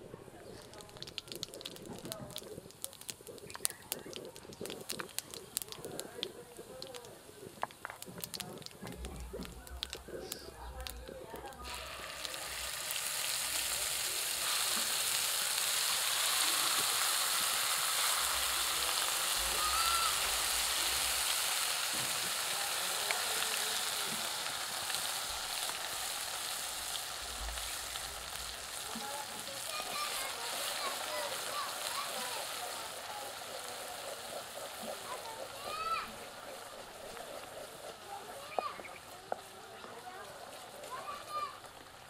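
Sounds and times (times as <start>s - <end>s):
paste sizzling in hot oil: 0.3s - 42.0s.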